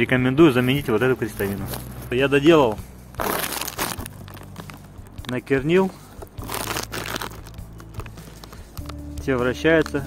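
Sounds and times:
gloved hand handling metal part: 0.6s - 9.0s.

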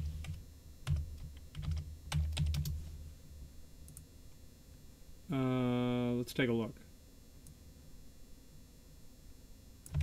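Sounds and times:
computer keyboard typing: 0.0s - 2.8s.

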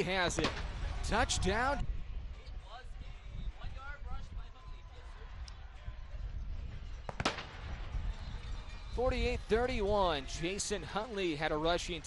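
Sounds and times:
wind rumble on microphone: 0.6s - 10.1s.

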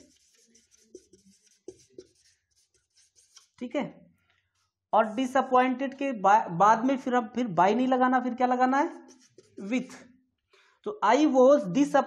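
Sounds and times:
marker pen scratching on whiteboard: 0.0s - 3.7s, 8.8s - 10.0s.

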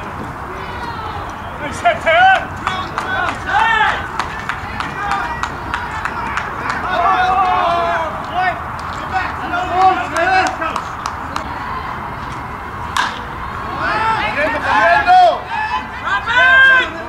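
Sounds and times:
ballplayers calling: 0.0s - 17.0s
wooden bat hitting ball: 12.9s - 13.3s.

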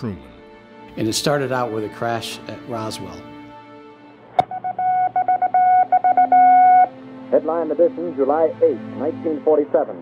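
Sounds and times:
morse code beeps: 4.4s - 7.0s.

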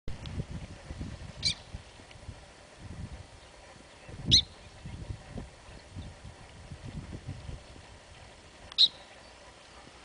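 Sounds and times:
low rumbling background noise: 0.1s - 10.0s
short high-pitched bird call: 8.8s - 9.0s.

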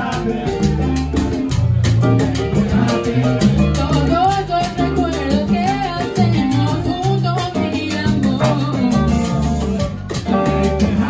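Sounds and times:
bass line: 0.0s - 11.0s
percussion: 0.0s - 11.0s
salsa band playing: 0.0s - 11.0s.

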